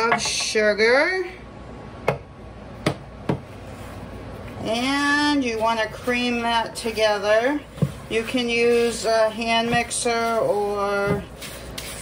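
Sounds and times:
kitchenware knocking: 0.0 - 0.6.

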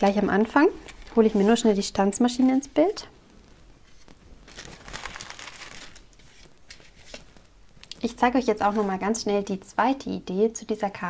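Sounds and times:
paper rustling: 3.4 - 7.4.

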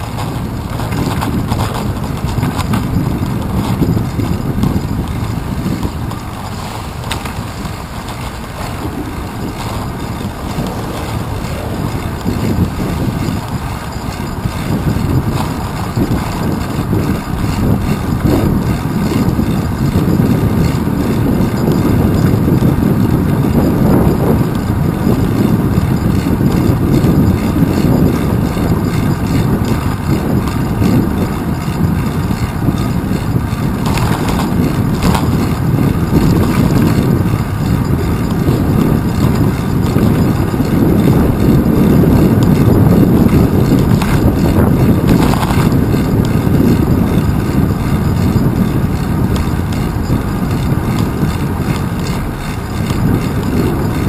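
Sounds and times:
road vibration rumble: 0.0 - 54.0
wind buffeting: 0.0 - 54.0.

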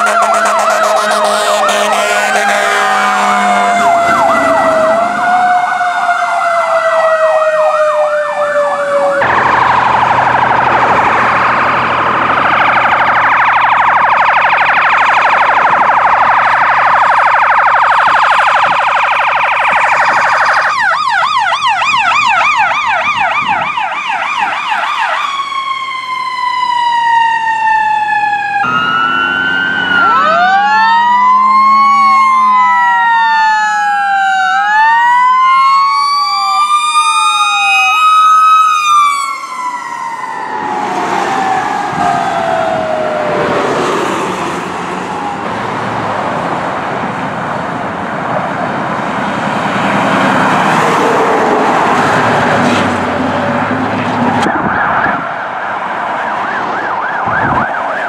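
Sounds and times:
emergency vehicle sirens: 0.0 - 58.0.

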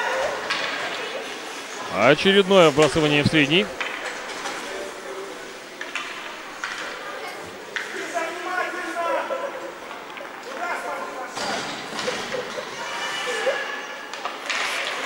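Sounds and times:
distant voices echoing in a hall: 0.0 - 15.0.

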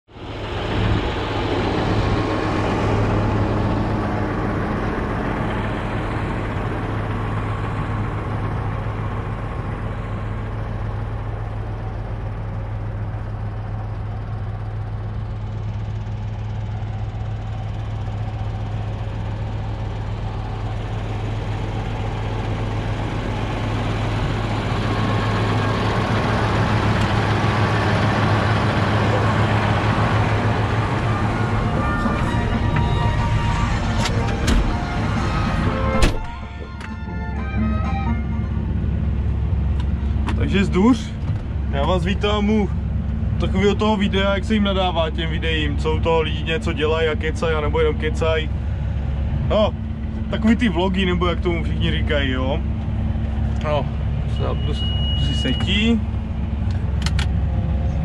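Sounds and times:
tractor diesel engine running: 0.1 - 58.0.

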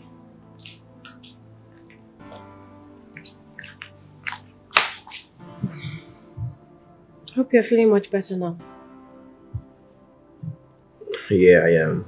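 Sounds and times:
soft film score: 0.0 - 12.0.

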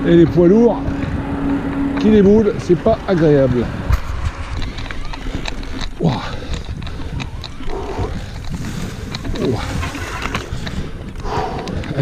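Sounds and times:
bike rumbling over stones: 0.0 - 12.0
rattling clicks of bike: 0.0 - 12.0
rider exclaiming: 4.6 - 10.6.

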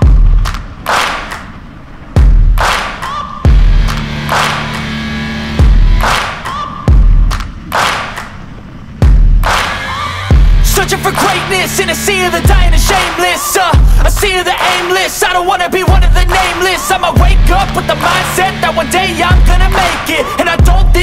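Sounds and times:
heavy bass hits: 0.0 - 0.8, 2.1 - 2.9, 3.5 - 6.3, 6.9 - 7.9, 9.0 - 13.2, 13.8 - 14.4, 15.9 - 21.0
instrumental rap music: 2.2 - 21.0.

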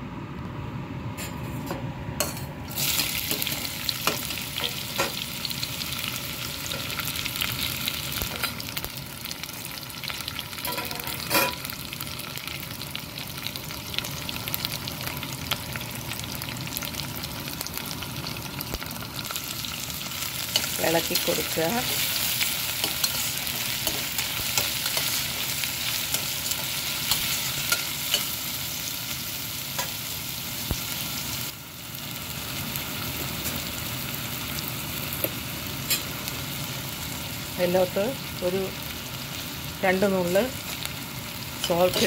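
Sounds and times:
onions sizzling in oil: 2.7 - 42.0.

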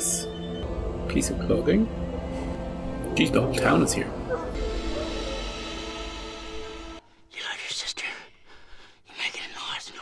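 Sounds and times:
breathy whispery human sounds: 7.3 - 10.0.

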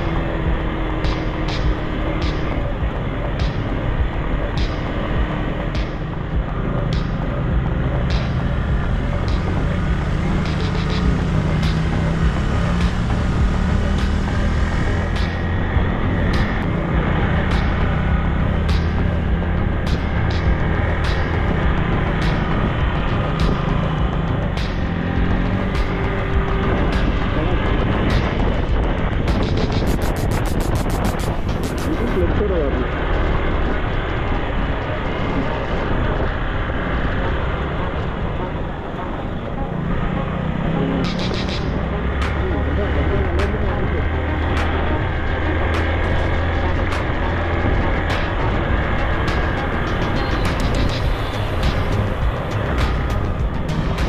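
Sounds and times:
motorcycle engine revving: 0.0 - 54.0
road and wind noise: 0.0 - 54.0.

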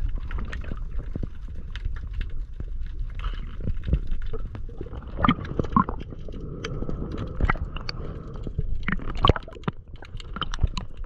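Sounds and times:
low rumble of moving water: 0.0 - 11.0
underwater clicks and crackles: 0.0 - 11.0.

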